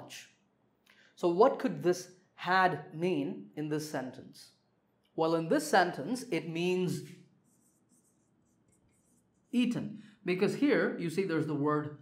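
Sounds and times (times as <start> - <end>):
marker writing on whiteboard: 6.5 - 9.8.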